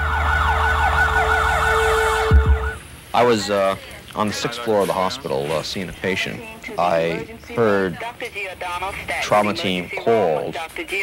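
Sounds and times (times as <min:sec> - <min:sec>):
siren yelping: 0:00.0 - 0:02.9
low thumps: 0:02.2 - 0:02.9.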